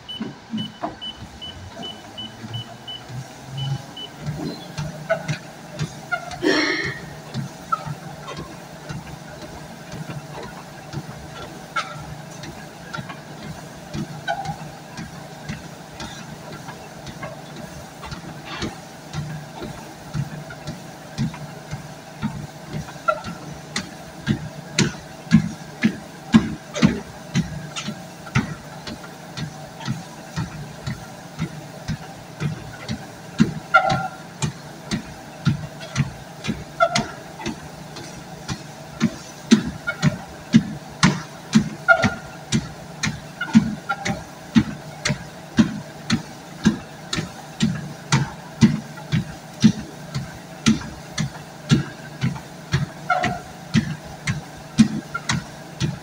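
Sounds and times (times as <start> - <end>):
footsteps on treadmill belt: 0.0 - 56.0
treadmill motor hum: 0.0 - 56.0.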